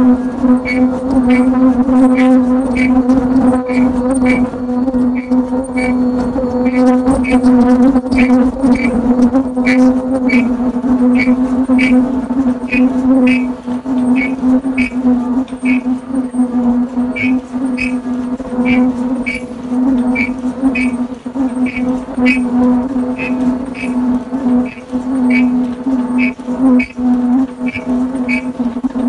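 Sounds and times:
machine humming: 0:00.0 - 0:29.0.

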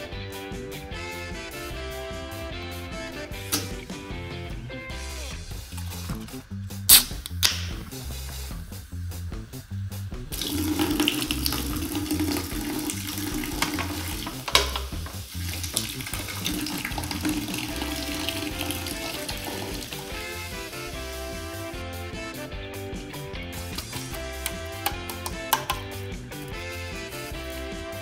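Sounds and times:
background music: 0:00.0 - 0:28.0
drink can ring-pull snapping open: 0:03.5 - 0:03.8, 0:23.7 - 0:25.9
fizzy drink pouring: 0:10.3 - 0:21.1.

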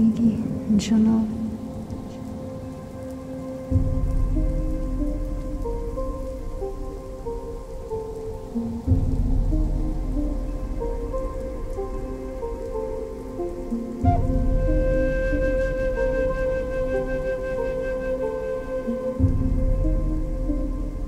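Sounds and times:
new-age music: 0:00.0 - 0:21.0
rain: 0:00.0 - 0:21.0
deep booms: 0:08.9 - 0:11.7.

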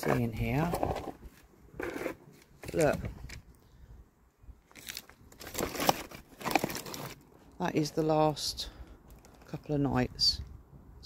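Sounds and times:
plastic trays crinkling: 0:04.7 - 0:07.3.

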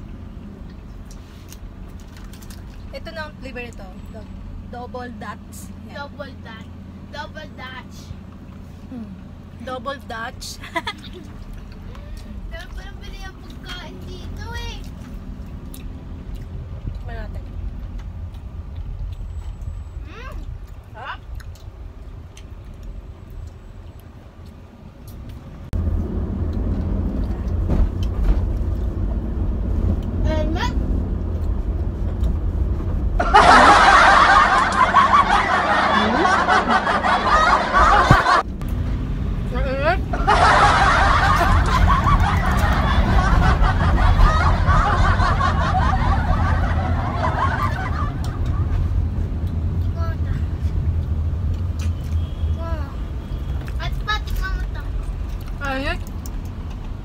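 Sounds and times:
low rumble of van cabin: 0:00.0 - 0:51.9
people talking: 0:02.9 - 0:08.1, 0:08.9 - 0:10.7, 0:17.0 - 0:17.4, 0:30.2 - 0:30.8, 0:34.8 - 0:38.4, 0:39.5 - 0:40.0, 0:53.8 - 0:55.0, 0:55.6 - 0:56.1
people laughing: 0:33.2 - 0:38.4, 0:40.1 - 0:48.8.

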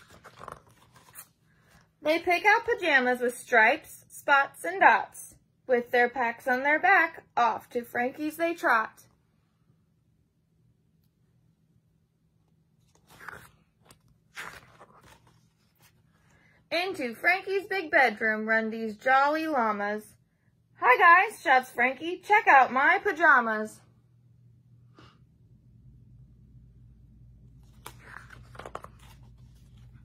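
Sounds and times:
book pages turning: 0:00.0 - 0:01.9, 0:12.8 - 0:16.4, 0:27.5 - 0:30.0.

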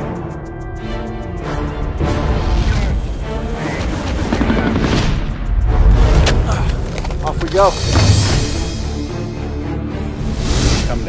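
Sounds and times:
background music: 0:00.0 - 0:11.0
helicopter engine and rotor: 0:03.0 - 0:05.4.

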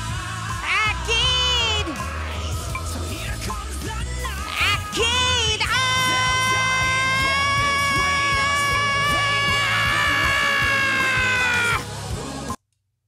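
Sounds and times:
backing track with beat: 0:00.0 - 0:12.6.

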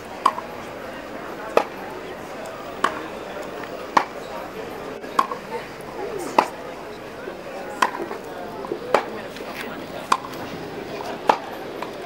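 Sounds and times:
tennis racket hitting ball: 0:00.2 - 0:00.5, 0:01.5 - 0:01.8, 0:02.8 - 0:03.1, 0:03.9 - 0:04.2, 0:07.8 - 0:08.2, 0:10.0 - 0:10.4, 0:11.2 - 0:11.9.

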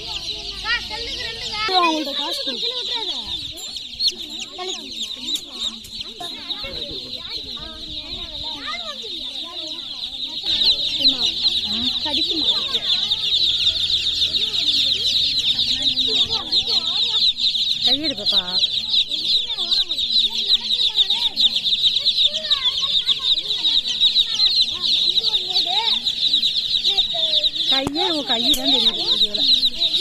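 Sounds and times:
baby chicks peeping: 0:00.0 - 0:30.0
faint voices: 0:00.0 - 0:30.0.

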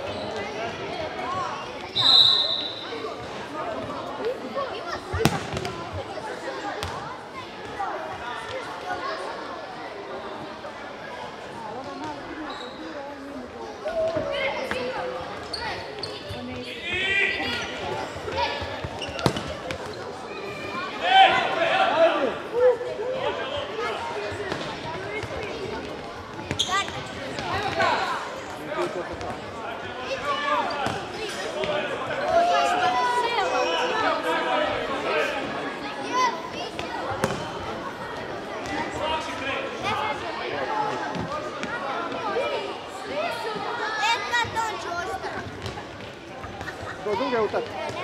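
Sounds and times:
people shouting in sports hall: 0:13.8 - 0:15.8, 0:16.4 - 0:19.4, 0:20.0 - 0:25.9, 0:26.5 - 0:28.9, 0:29.8 - 0:45.8, 0:46.4 - 0:48.0.

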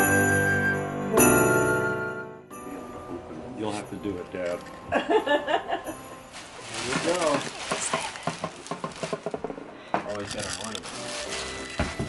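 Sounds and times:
paper gift bag crinkling: 0:06.2 - 0:09.4, 0:10.1 - 0:12.0.

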